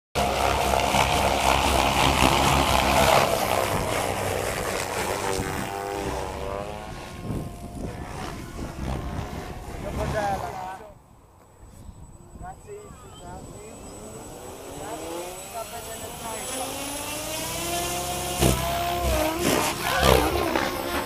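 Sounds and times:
model helicopter rotor noise: 0.2 - 21.0.

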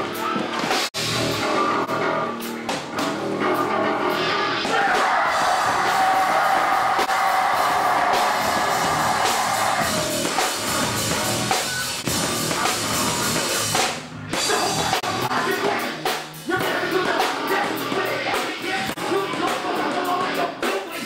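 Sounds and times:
distorted electric guitar: 0.0 - 19.9
bass guitar: 0.0 - 21.0
drum kit: 0.0 - 21.0
vocalist on microphone: 14.4 - 21.0.

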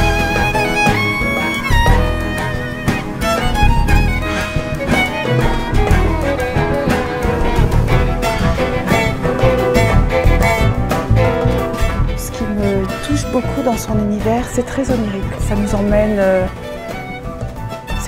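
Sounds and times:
bowed strings: 0.0 - 18.0
drums: 0.0 - 18.0
hand percussion strikes: 0.0 - 18.0
piano: 0.0 - 18.0.

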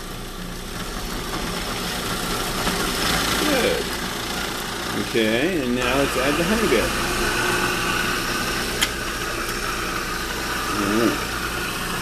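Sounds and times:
food processor grinding: 0.0 - 12.0.

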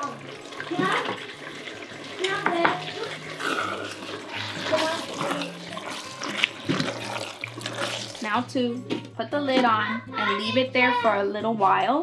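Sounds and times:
spatula stirring thick chili: 2.8 - 8.4.

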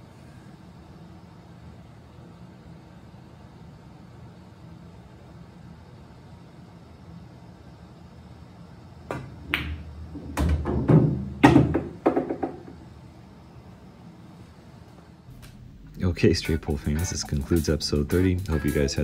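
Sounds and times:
balls knocking: 9.1 - 12.8
pool balls clicking together: 9.1 - 12.8.

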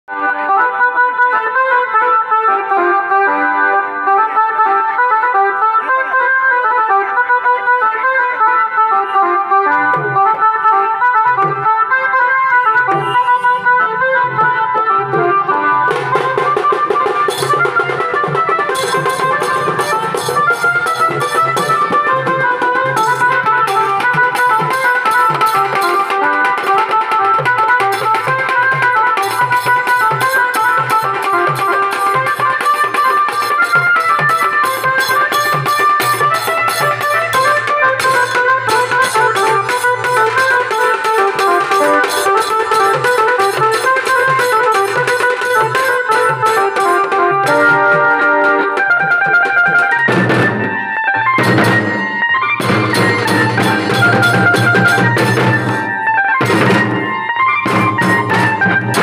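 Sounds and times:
barrel drums beating: 15.9 - 59.0
cymbals: 27.9 - 48.8.

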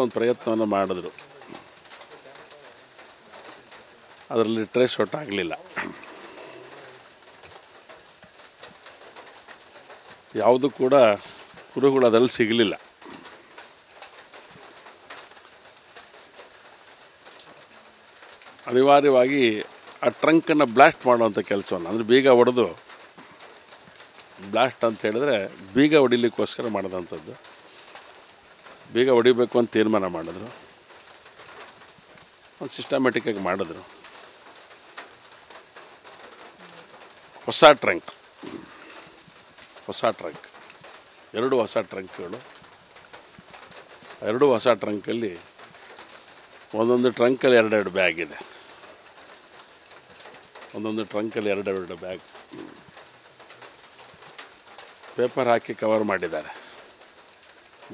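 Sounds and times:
light rain ticks: 0.0 - 57.9
rain hiss: 0.0 - 57.9.

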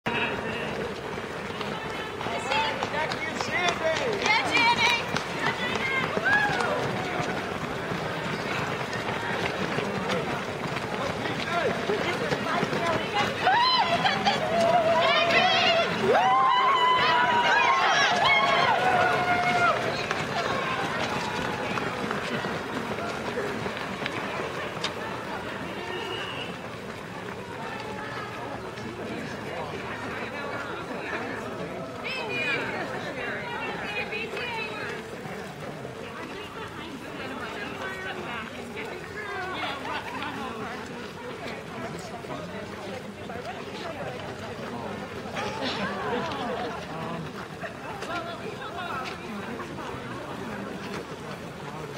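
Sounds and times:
runners' footsteps on pavement: 0.0 - 51.9
voices calling out: 0.0 - 51.9.

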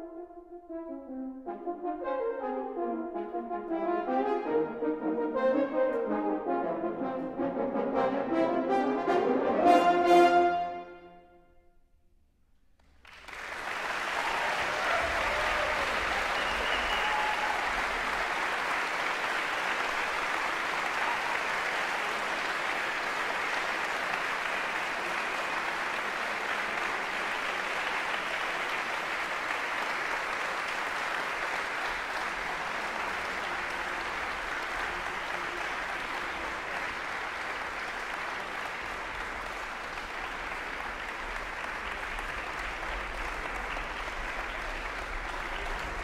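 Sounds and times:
audience applause: 12.8 - 46.0.

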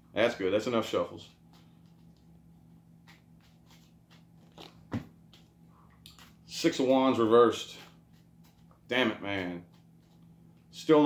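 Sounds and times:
faint low hum: 0.0 - 11.0
cards clicking and snapping: 3.0 - 5.5.

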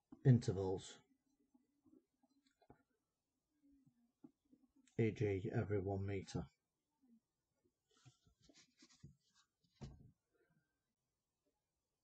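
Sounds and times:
pen scratching on paper: 8.4 - 9.5.

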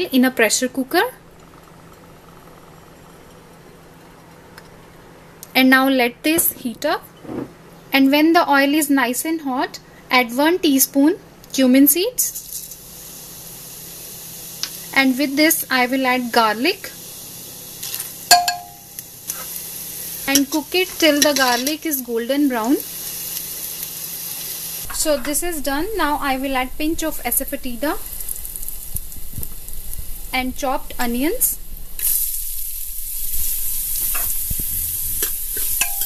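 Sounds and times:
oil sizzling: 12.3 - 36.0
bowl clinking: 18.3 - 18.9, 35.6 - 36.0.

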